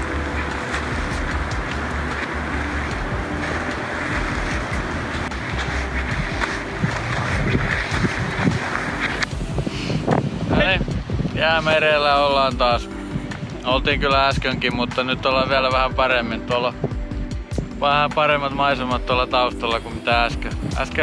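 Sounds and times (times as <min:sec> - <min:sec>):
surf on rocky shore: 0:00.0 - 0:13.8
wind on microphone: 0:00.0 - 0:17.8.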